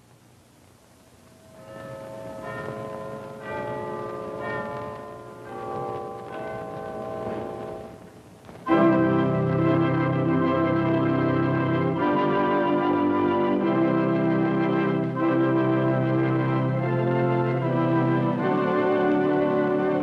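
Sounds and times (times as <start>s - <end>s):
slow melody of held notes: 1.2s - 20.0s
full orchestra with brass: 8.7s - 20.0s.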